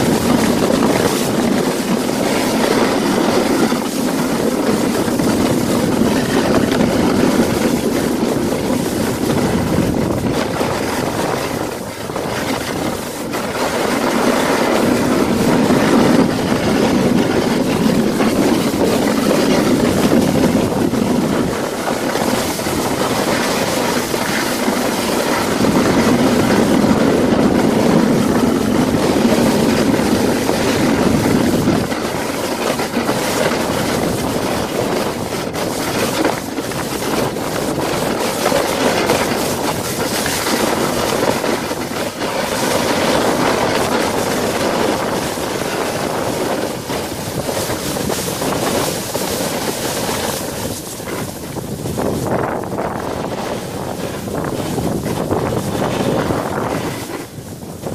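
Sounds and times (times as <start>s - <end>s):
toboggan scraping over snow: 0.0s - 57.9s.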